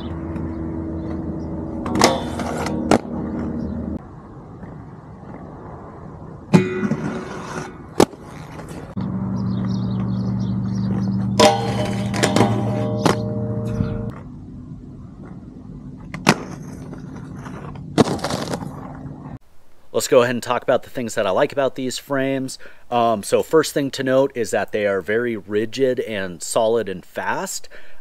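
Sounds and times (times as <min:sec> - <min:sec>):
inline skate wheels humming: 0:00.0 - 0:19.4
skates scraping slides: 0:02.0 - 0:03.5, 0:06.8 - 0:09.0, 0:16.3 - 0:19.4
skate landing clacks: 0:06.6 - 0:08.9, 0:16.0 - 0:19.0.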